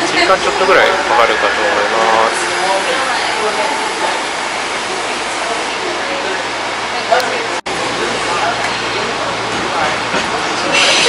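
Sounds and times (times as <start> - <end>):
train rolling noise inside cabin: 0.0 - 11.0.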